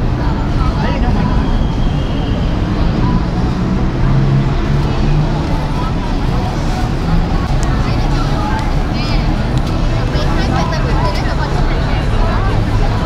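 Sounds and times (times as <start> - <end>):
indistinct voices talking: 0.0 - 13.0
low rumble of traffic: 0.0 - 13.0.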